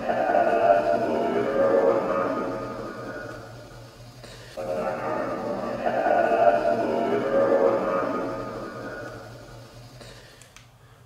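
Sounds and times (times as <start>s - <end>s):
broken voice fragments: 0.0s - 3.8s, 4.6s - 9.7s
static sweep noise: 0.0s - 10.4s.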